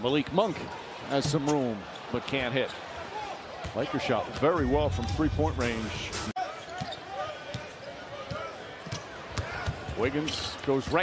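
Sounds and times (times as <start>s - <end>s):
arena crowd murmur: 0.0s - 11.0s
sneaker squeaks: 6.6s - 7.0s.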